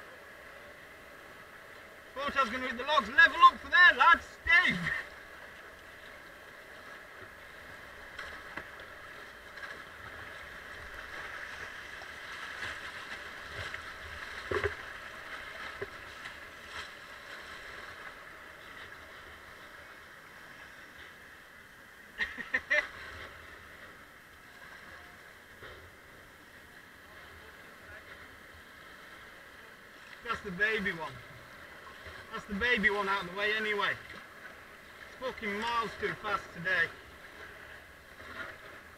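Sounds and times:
river water rushing: 0:00.0 - 0:20.5, 0:21.2 - 0:38.9
paddle strokes splashing: 0:00.0 - 0:21.2, 0:27.4 - 0:38.9.

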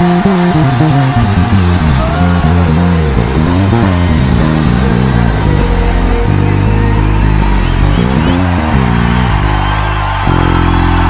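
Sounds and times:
backing music: 0:00.0 - 0:11.0
electric bass guitar bassline: 0:00.0 - 0:11.0.

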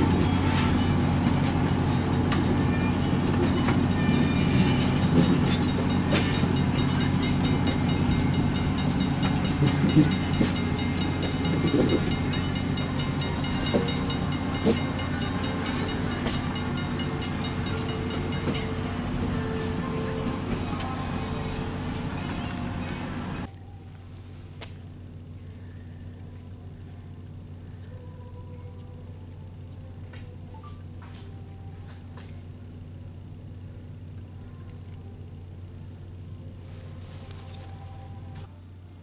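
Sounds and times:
train coaches rolling past: 0:00.0 - 0:23.5
wheels clicking on rails: 0:00.0 - 0:23.5.

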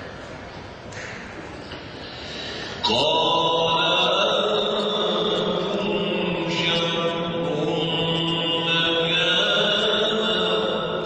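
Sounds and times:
man chanting melodically: 0:02.8 - 0:11.0.

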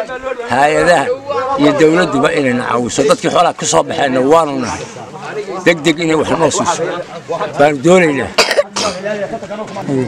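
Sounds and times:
elderly man talking: 0:00.0 - 0:10.0
elderly man coughing: 0:08.4 - 0:09.0.

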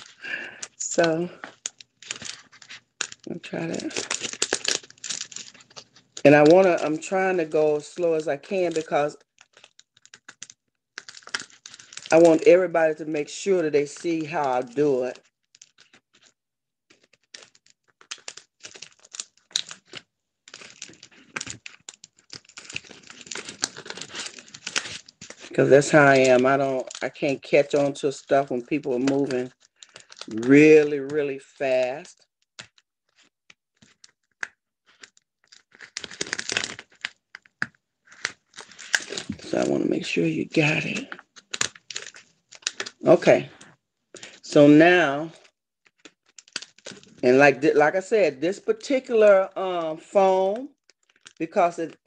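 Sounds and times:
placemat crinkling and clicking: 0:00.0 - 0:44.5, 0:45.4 - 0:47.3, 0:50.3 - 0:52.0.

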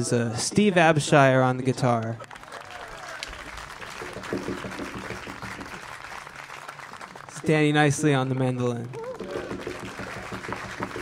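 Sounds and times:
audience applauding: 0:02.0 - 0:11.0.

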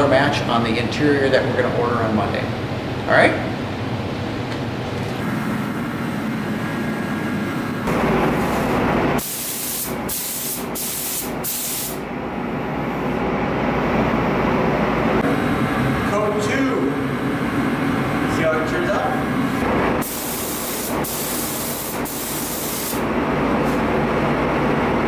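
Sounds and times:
spray gun hissing: 0:09.2 - 0:12.0, 0:20.0 - 0:23.1.

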